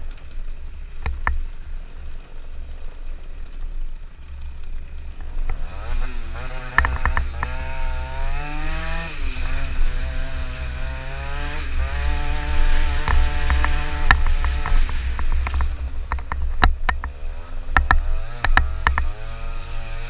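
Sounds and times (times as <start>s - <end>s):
scooter engine revving: 5.2s - 20.0s
knocks and rattles: 6.4s - 7.7s, 12.1s - 19.3s.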